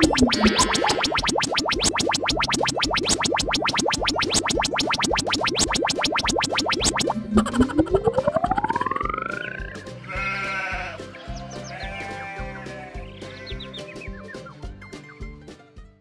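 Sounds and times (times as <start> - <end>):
rising swooping tone: 0.0 - 10.0
electronic music with steady beat: 0.0 - 10.1
drawn-out animal cries: 10.0 - 13.7.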